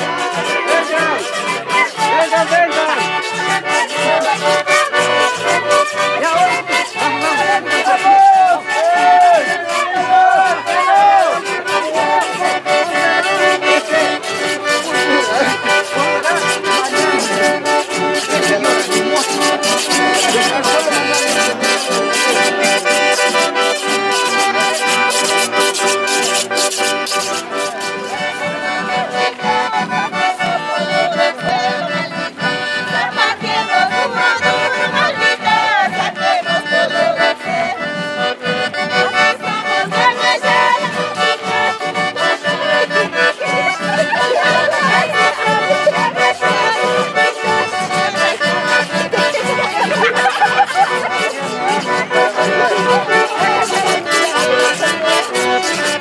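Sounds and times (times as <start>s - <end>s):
accordion: 0.0s - 56.0s
strummed acoustic guitars: 0.0s - 56.0s.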